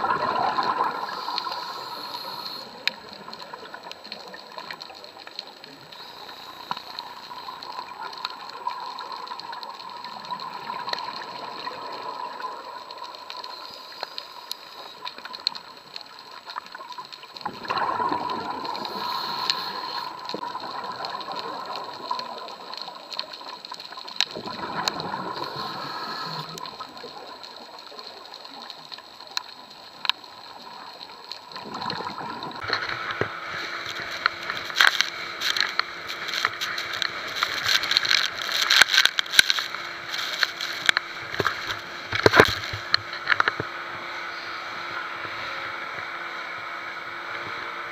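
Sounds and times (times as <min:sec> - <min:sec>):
underwater scuba breathing bubbles: 0:00.0 - 0:15.8, 0:16.5 - 0:28.7, 0:29.3 - 0:44.8.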